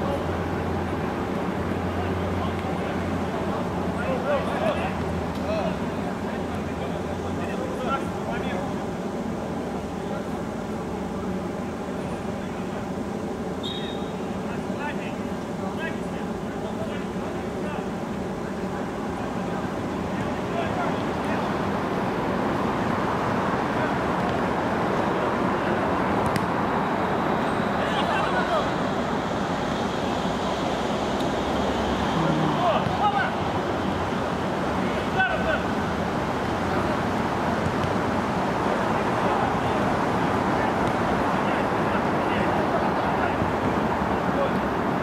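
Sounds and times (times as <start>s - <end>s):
background noise: 0.0s - 45.0s.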